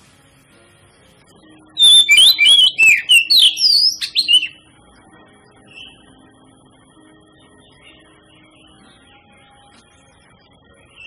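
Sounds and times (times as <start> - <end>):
bird singing whistles: 1.8 - 4.6.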